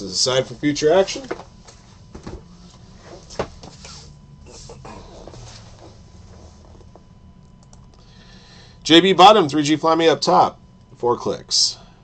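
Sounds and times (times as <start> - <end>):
keyboard and mouse clicks: 7.4 - 8.0.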